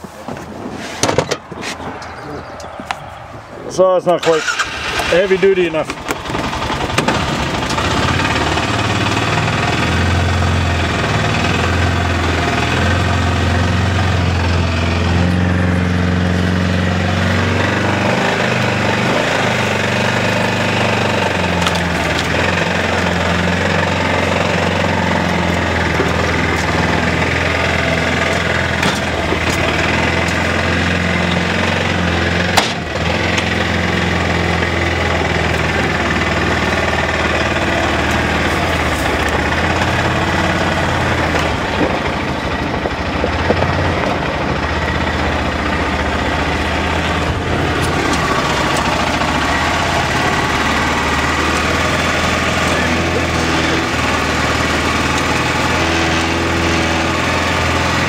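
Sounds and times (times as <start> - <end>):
utility vehicle engine running: 0.3 - 58.0.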